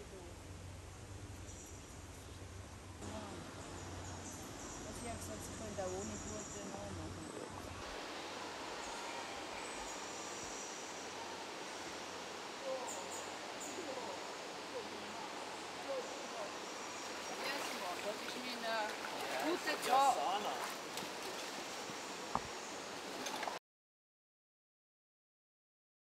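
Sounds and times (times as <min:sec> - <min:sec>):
water hiss: 0:07.8 - 0:23.6
indistinct voices: 0:12.5 - 0:16.7.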